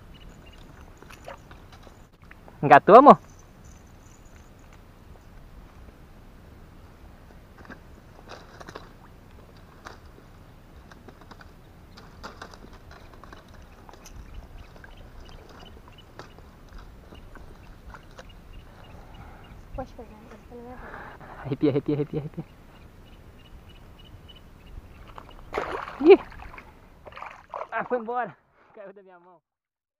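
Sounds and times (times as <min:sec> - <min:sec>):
crackles in wet grass and water: 0:00.0 - 0:02.6, 0:03.2 - 0:06.1, 0:07.2 - 0:20.9, 0:22.2 - 0:28.9.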